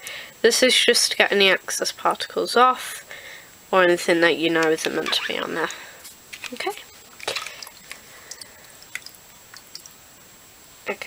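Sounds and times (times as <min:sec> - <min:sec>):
water drips and small splashes: 0:06.5 - 0:10.0.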